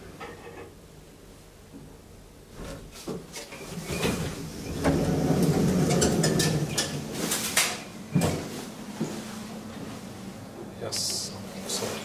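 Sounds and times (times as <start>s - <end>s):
elevator door sliding rumble: 3.5s - 9.0s.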